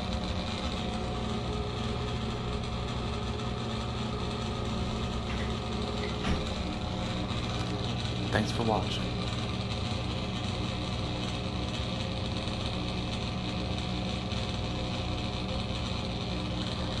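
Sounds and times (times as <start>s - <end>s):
exhaust fan humming: 0.0s - 17.0s.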